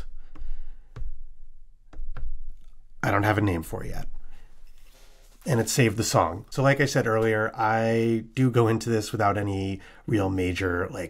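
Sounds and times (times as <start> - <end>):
fingers tapping silicone pads: 0.2 - 3.0.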